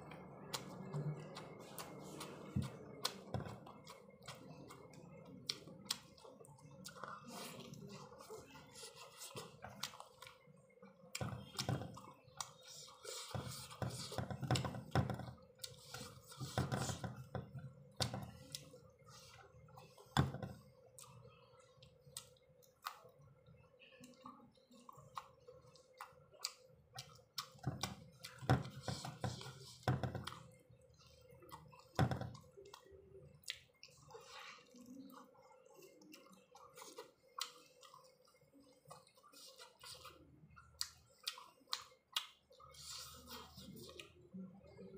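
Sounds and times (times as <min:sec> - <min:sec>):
person chewing with wet mouth clicks: 0:00.0 - 0:13.3, 0:15.6 - 0:16.4, 0:20.9 - 0:28.4, 0:29.4 - 0:44.9.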